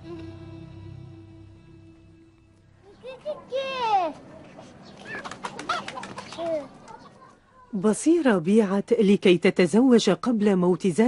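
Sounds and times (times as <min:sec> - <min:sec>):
chickens clucking: 0:04.4 - 0:07.4.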